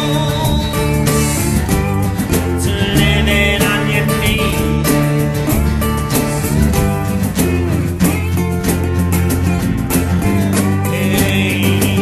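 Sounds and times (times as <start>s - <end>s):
country rock band: 0.0s - 12.0s.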